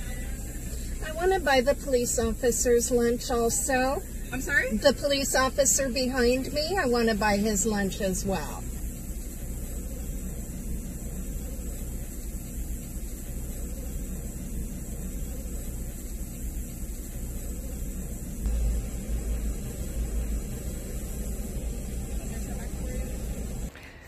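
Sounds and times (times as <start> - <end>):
car engine idling: 0.0 - 23.8.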